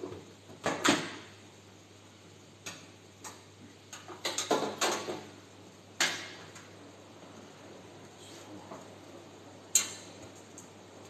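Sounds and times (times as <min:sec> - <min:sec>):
clicks and taps on sheet metal: 0:02.6 - 0:05.3.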